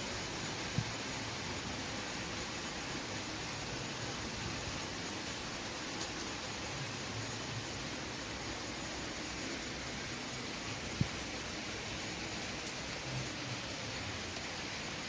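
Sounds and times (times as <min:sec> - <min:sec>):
rain falling: 0:00.0 - 0:15.0.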